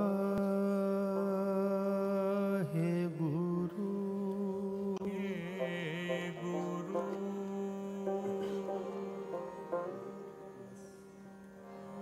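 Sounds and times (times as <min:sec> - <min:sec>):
man singing long note: 0:00.0 - 0:10.8.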